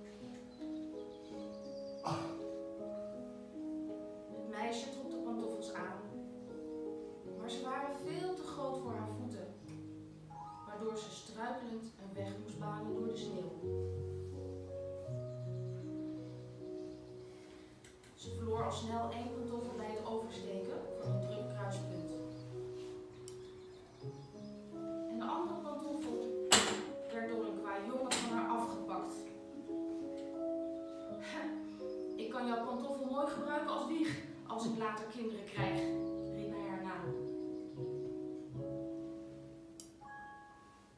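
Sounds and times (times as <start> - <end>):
electronic keyboard chords: 0.0 - 34.8, 35.4 - 40.9
person telling a story: 4.4 - 6.1, 7.4 - 9.6, 10.6 - 13.8, 18.2 - 22.3, 25.1 - 29.4, 32.2 - 37.3
person speaking: 18.2 - 22.3.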